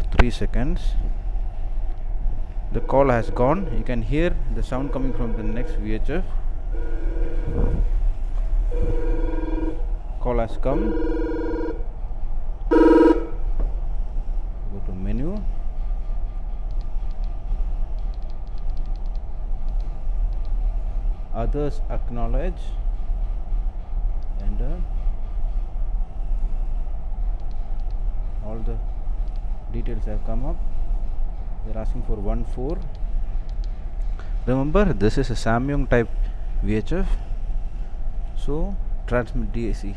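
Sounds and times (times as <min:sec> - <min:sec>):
low rumble: 0:00.0 - 0:39.9
radio two-note electronic beep: 0:04.7 - 0:05.9
faint clicks: 0:16.6 - 0:20.6, 0:32.7 - 0:34.1.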